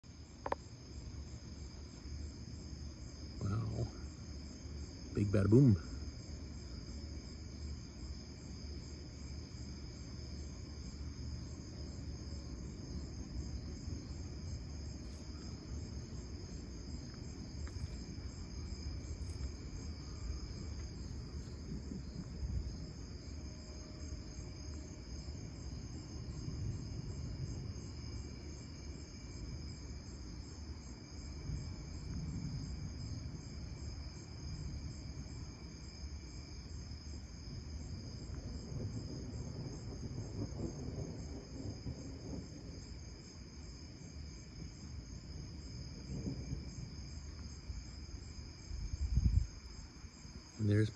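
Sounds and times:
crickets chirping: 0:00.0 - 0:50.9.

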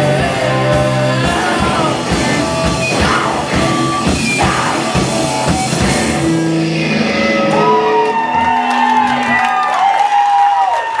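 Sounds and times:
wavering guitar tones: 0:00.0 - 0:08.7
live rock band playing: 0:00.0 - 0:09.5
audience whooping and shouting: 0:02.9 - 0:11.0.

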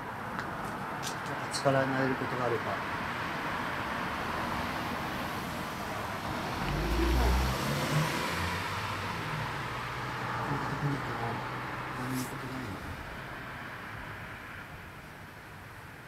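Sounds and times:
road traffic: 0:00.0 - 0:16.0
deep rumble: 0:06.2 - 0:08.4.

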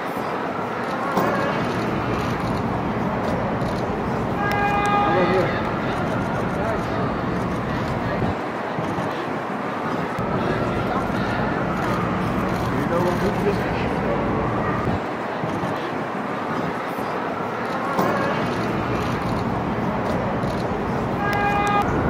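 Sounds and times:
traffic: 0:00.0 - 0:22.0
car horn: 0:04.3 - 0:05.6, 0:21.2 - 0:22.0.

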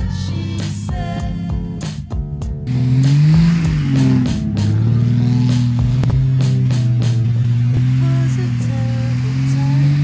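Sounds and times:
music with steady beat: 0:00.0 - 0:10.0
car engine revving: 0:02.5 - 0:10.0
wheels spinning in snow: 0:02.7 - 0:10.0.

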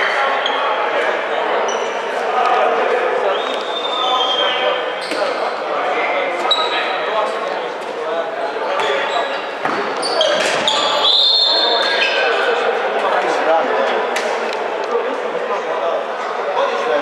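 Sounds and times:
high-pitched shoe squeaks: 0:06.4 - 0:06.9, 0:08.8 - 0:12.4.

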